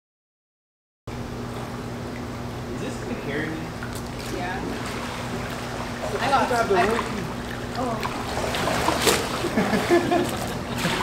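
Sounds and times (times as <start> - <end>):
steady hum with low drone: 1.1 - 11.0.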